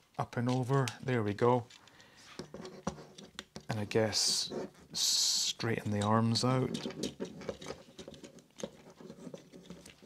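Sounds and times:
plastic toy parts clicking: 0.4s - 2.5s.

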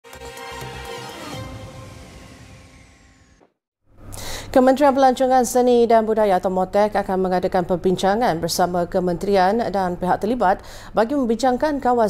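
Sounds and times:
news intro theme music: 0.0s - 3.6s
high falling sweep: 1.0s - 3.6s.

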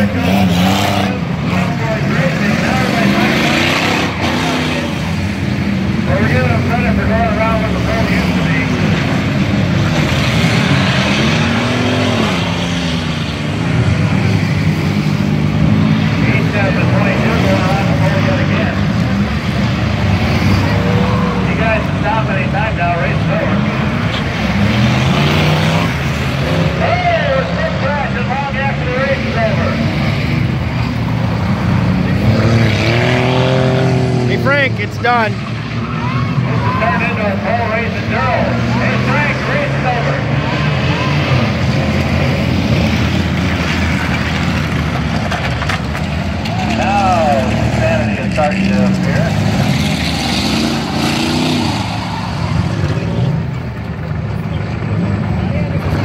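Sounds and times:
race car engines revving: 0.0s - 56.0s.

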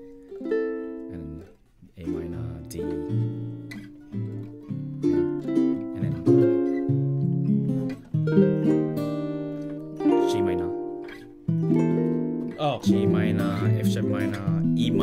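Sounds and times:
ukulele chords ringing: 0.0s - 15.0s.

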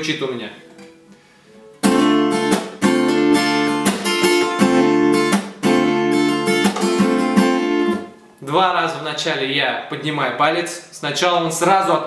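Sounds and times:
acoustic guitar strumming: 0.5s - 8.4s.

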